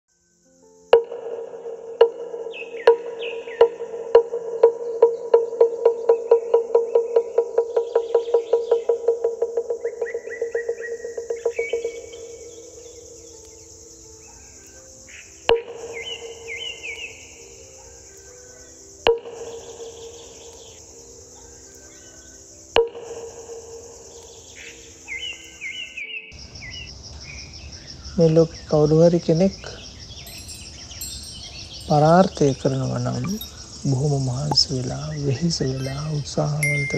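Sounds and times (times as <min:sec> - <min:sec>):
high insect drone: 0:00.1 - 0:36.9
birds chirping: 0:02.5 - 0:03.9, 0:04.7 - 0:36.9
bell ringing: 0:30.3 - 0:33.5, 0:36.6 - 0:36.9.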